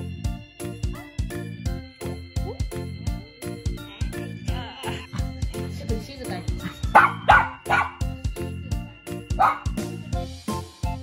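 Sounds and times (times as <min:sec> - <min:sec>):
background music with beat: 0:00.0 - 0:11.0
dog barking: 0:06.9 - 0:08.0, 0:09.4 - 0:09.8.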